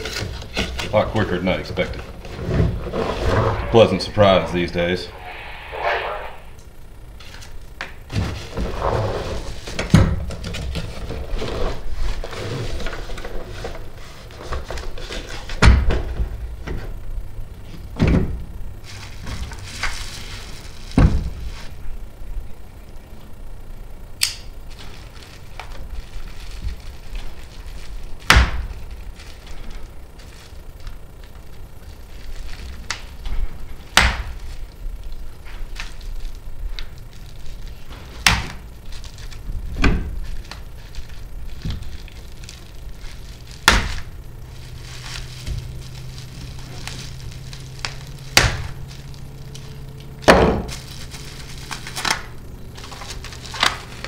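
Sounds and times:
plastic wrap rustling: 0:07.2 - 0:15.6, 0:18.8 - 0:22.0, 0:24.6 - 0:54.0.

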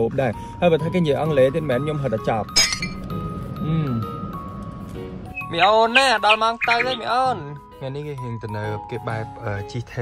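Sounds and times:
background music: 0:00.0 - 0:10.0
high-pitched clink: 0:02.5 - 0:04.2.

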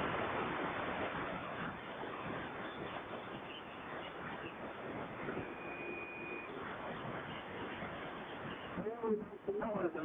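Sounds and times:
radio receiver hiss: 0:00.0 - 0:10.0
faint steady whistle: 0:05.3 - 0:06.7.

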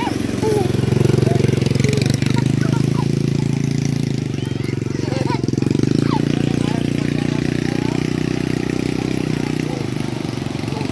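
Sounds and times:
engine idling: 0:00.0 - 0:10.9.

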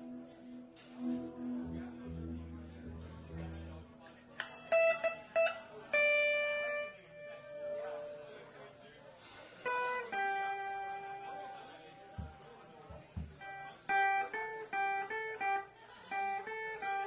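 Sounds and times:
lead instrument melody: 0:00.0 - 0:08.5
keyboard accompaniment: 0:00.0 - 0:08.7
soft electric guitar: 0:00.0 - 0:17.0.

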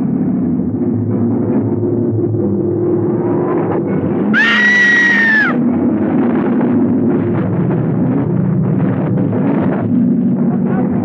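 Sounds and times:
woman screaming: 0:04.4 - 0:05.6.

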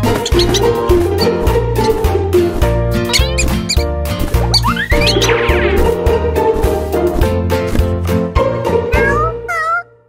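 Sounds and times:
squeaky chirps: 0:00.0 - 0:02.0, 0:03.1 - 0:05.7
upbeat cartoon music: 0:00.0 - 0:10.0.

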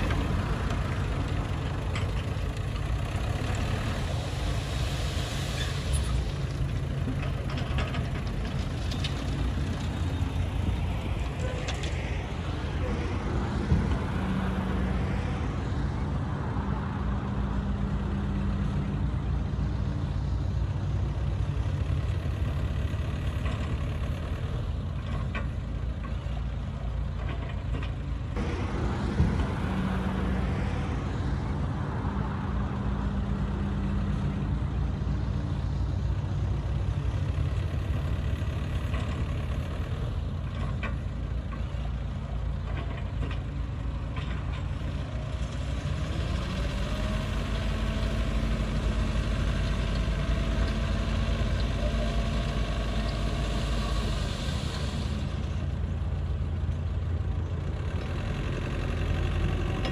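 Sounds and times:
bulldozer diesel engine: 0:00.0 - 0:59.9.

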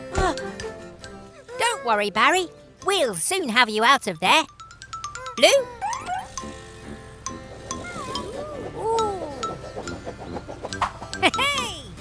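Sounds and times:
light cartoon music: 0:00.0 - 0:12.0.

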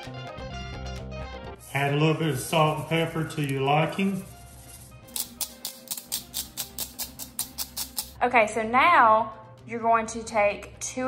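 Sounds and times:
quiet background music: 0:00.0 - 0:11.0
salt and pepper shakers rattling: 0:05.1 - 0:08.2.

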